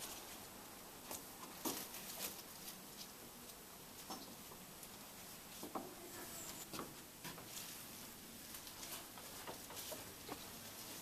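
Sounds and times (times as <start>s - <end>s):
rustling of foliage: 0.0s - 11.0s.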